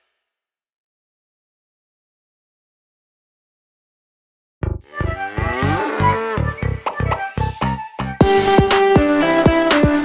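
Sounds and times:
cow mooing: 4.9s - 6.9s
musical beat: 5.0s - 10.0s.

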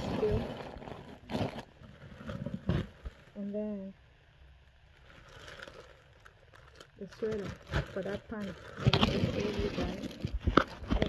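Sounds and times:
plastic bag rustling: 0.0s - 3.9s, 4.7s - 11.0s.

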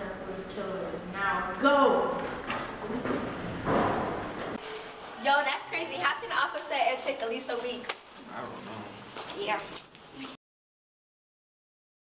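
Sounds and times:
footsteps on hard floor: 9.0s - 10.4s.

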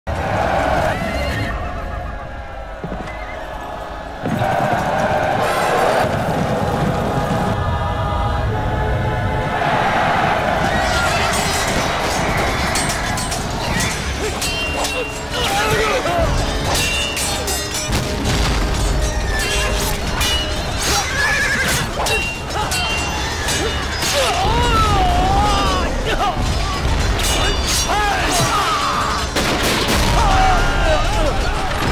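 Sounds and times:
battle noise: 0.1s - 31.9s
sharp clashes: 10.6s - 31.9s.

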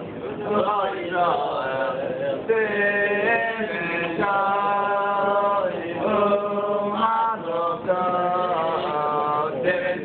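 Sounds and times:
men chanting: 0.4s - 10.0s.

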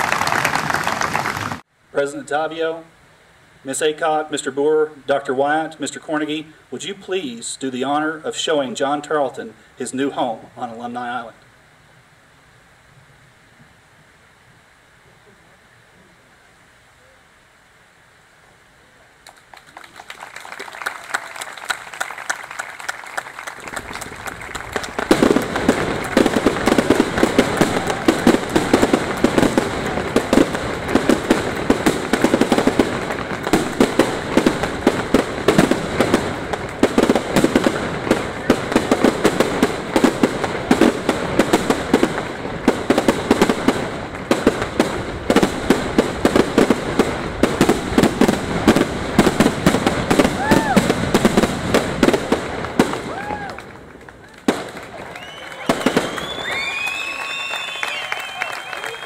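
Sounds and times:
fireworks crackling and banging: 0.0s - 2.6s, 19.2s - 59.0s.

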